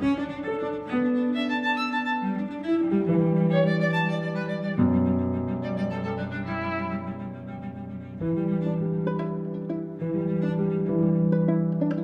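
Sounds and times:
piano trio playing: 0.0s - 12.0s.

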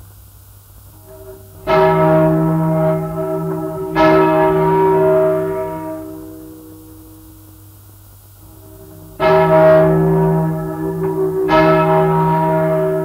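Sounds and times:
large church bell striking: 0.9s - 13.0s.

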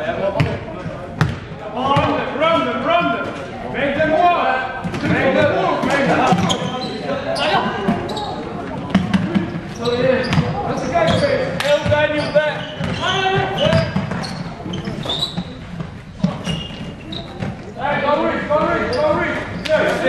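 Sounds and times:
voices calling in echoing hall: 0.0s - 20.0s
basketball bouncing on floor: 1.2s - 1.4s.

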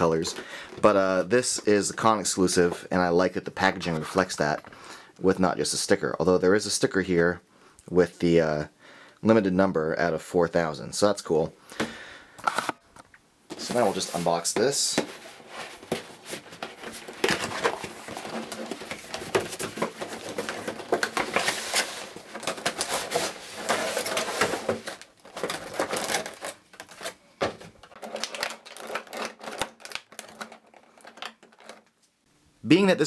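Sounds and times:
cardboard and plastic scraping: 13.5s - 32.1s.

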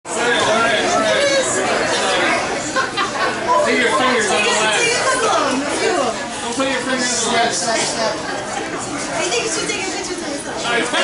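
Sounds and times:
people chattering: 0.1s - 11.0s.

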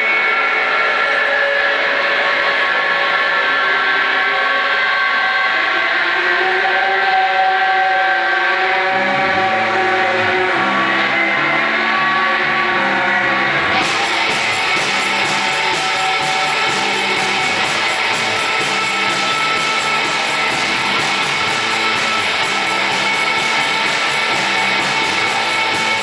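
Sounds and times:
distorted electric guitar drone: 0.0s - 26.0s
bass guitar line: 8.0s - 26.0s.

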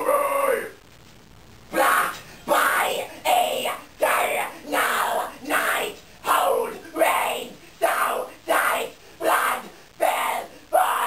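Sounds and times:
harsh screamed vocals: 0.0s - 0.8s, 1.7s - 11.0s.

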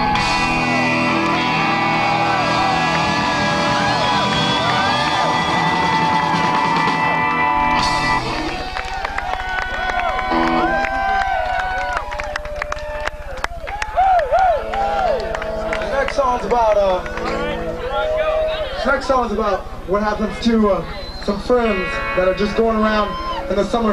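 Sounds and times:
live rock band playing: 0.0s - 11.3s, 14.6s - 23.9s
crowd cheering and clapping: 0.0s - 19.5s.

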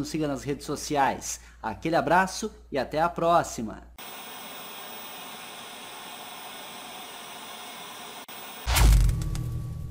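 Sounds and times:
static hiss: 4.0s - 9.0s.

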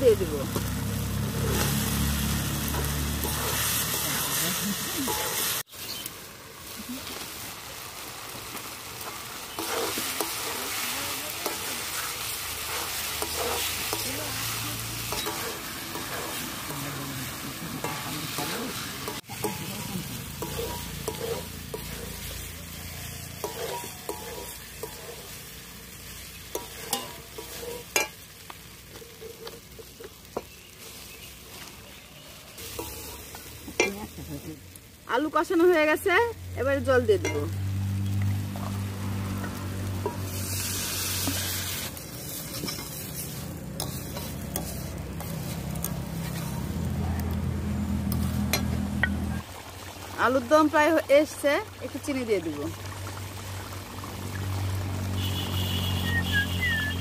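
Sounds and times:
potatoes sizzling in oil: 0.0s - 57.0s
metal spatula scraping pan: 2.6s - 5.6s, 9.5s - 25.4s, 26.5s - 28.2s, 32.6s - 34.0s, 39.4s - 46.8s.

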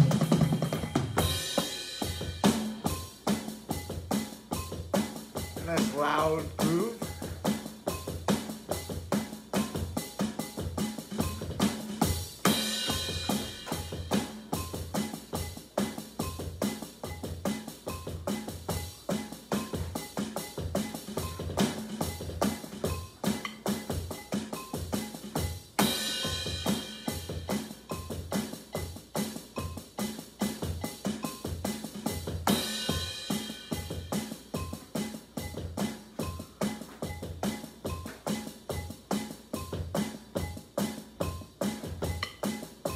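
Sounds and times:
drum kit groove: 0.0s - 42.9s.

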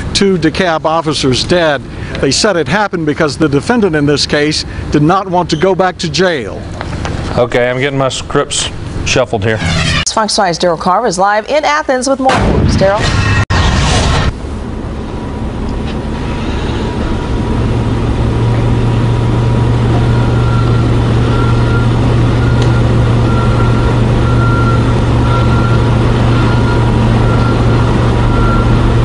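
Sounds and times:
low mechanical hum: 0.0s - 11.1s, 12.4s - 29.0s.

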